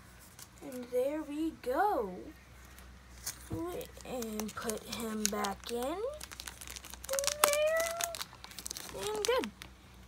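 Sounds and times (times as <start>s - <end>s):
plastic sleeves crinkling and clicking: 2.7s - 9.8s.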